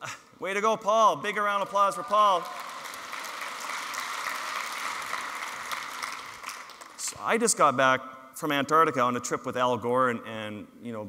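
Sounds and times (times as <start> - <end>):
audience applauding: 1.5 - 7.2.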